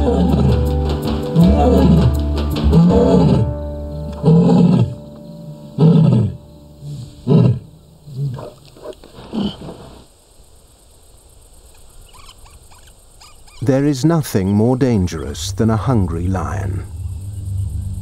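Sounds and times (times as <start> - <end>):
lioness roaring and grunting: 0.0 - 0.7, 1.4 - 5.0.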